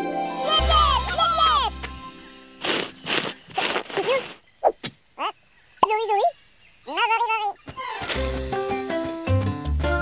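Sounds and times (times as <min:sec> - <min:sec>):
background music: 0:00.0 - 0:02.9, 0:08.0 - 0:10.0
cartoon shovel scraping soil: 0:02.6 - 0:05.0, 0:07.8 - 0:08.8.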